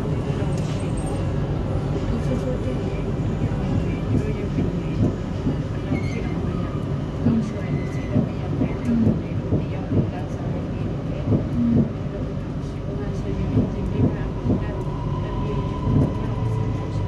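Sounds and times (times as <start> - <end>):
train rumbling on track: 0.0 - 17.0.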